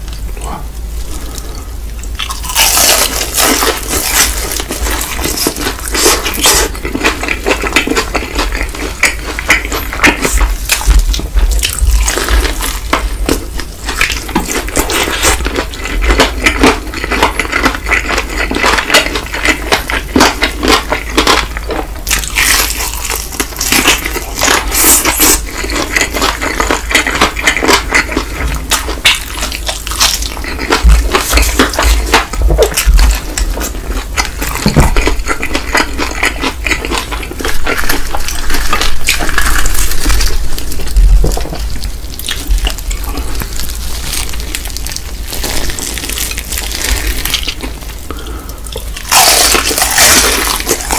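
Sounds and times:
crunching fried chicken: 0.0 - 50.9
chewing thuds: 29.9 - 44.7.

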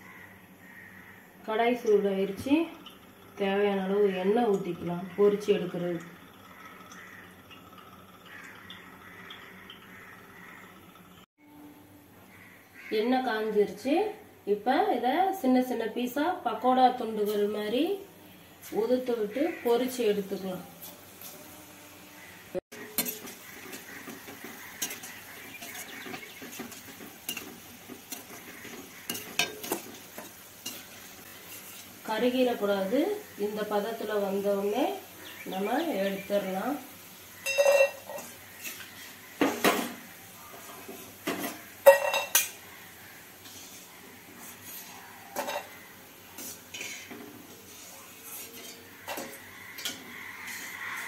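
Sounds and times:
dough deep-frying in hot oil: 0.0 - 11.3, 18.6 - 51.0
metal spoon clinking against pan: 22.8 - 31.8, 37.4 - 38.8, 41.2 - 42.6.

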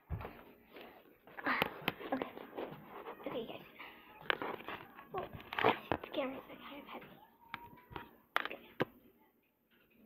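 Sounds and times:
child talking indistinctly: 3.1 - 4.0, 5.0 - 8.8.

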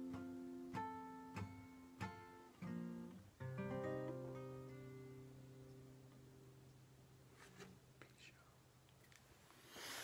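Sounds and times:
faint soft noises: 7.1 - 10.0.

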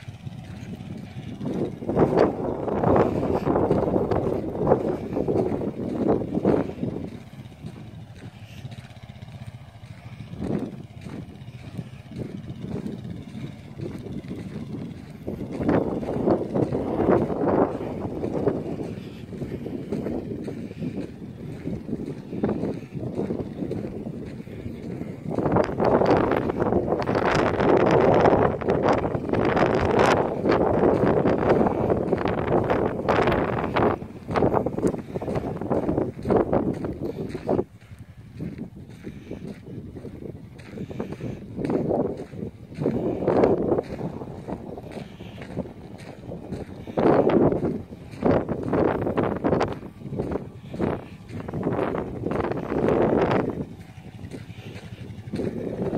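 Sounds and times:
distant atv engine: 0.0 - 55.9
wind noise on microphone: 0.0 - 55.9.

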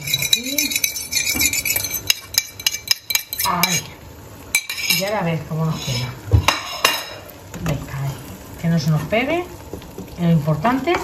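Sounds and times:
egg sizzling in oil: 0.0 - 11.0.

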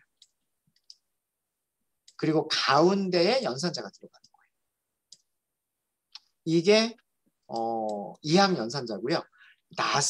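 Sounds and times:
computer mouse clicking: 0.0 - 1.0, 5.1 - 5.3.

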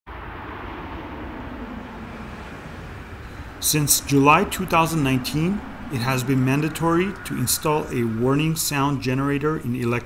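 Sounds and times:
electric car warning hum: 0.1 - 10.0
tyre and road noise: 0.1 - 10.0.

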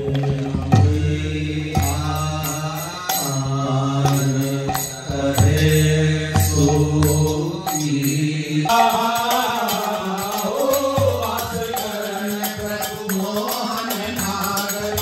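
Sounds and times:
group singing devotional chant: 0.0 - 15.0
sharp percussion strikes: 0.0 - 15.0.

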